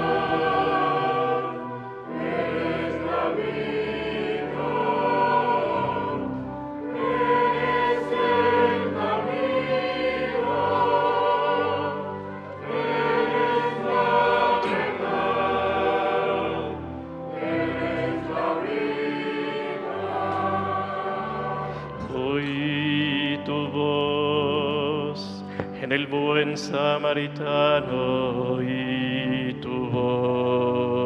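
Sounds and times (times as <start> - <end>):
choir breaths: 0.0 - 22.9, 25.2 - 25.8
choir singing a hymn: 0.0 - 31.0.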